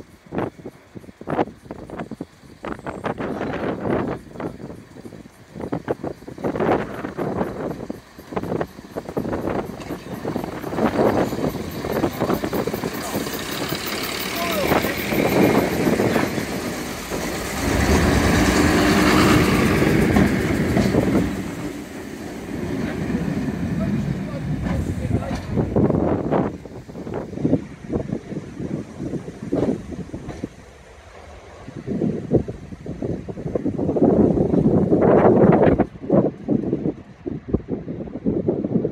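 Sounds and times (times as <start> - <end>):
train diesel engines running: 0.0 - 38.9.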